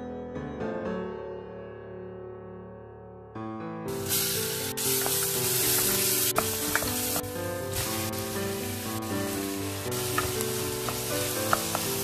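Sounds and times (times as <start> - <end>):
garlic sizzling in hot oil: 3.9 - 12.0.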